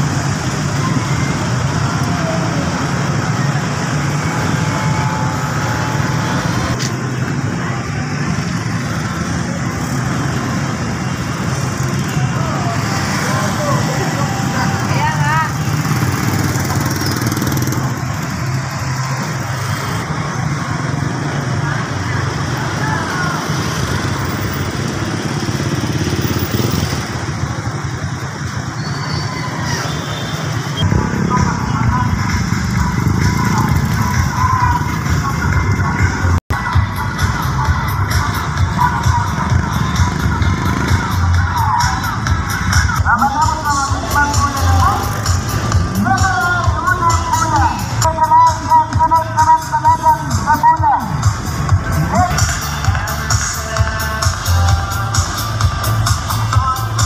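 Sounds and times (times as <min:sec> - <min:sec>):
motorcycles and cars passing: 0:00.0 - 0:57.0
people's voices: 0:00.0 - 0:57.0.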